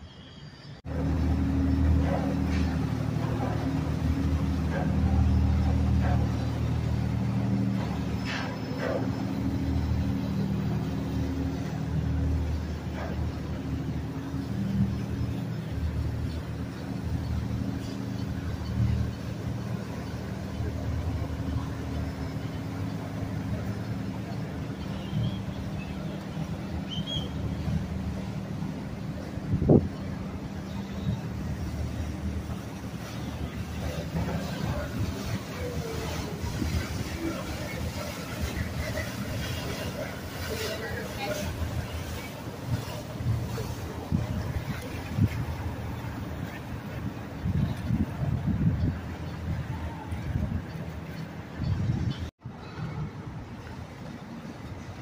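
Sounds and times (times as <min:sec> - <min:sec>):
boat engines droning: 0:00.0 - 0:55.0.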